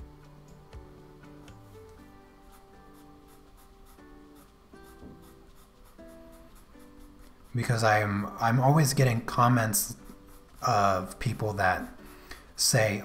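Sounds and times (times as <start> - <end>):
soft background music: 0.0 - 13.0
pencil scratching on paper: 2.4 - 12.1.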